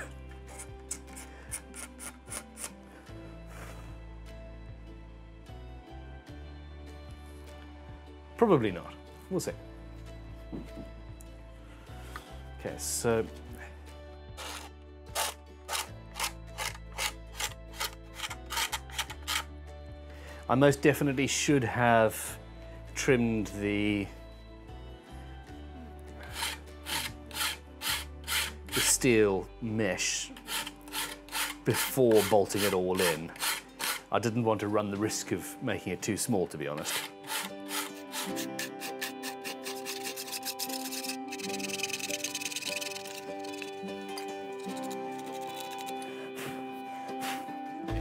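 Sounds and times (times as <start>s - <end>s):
quiet background music: 0.0s - 48.0s
hand tool rasping wood: 26.3s - 29.0s, 30.4s - 34.1s, 36.8s - 47.5s.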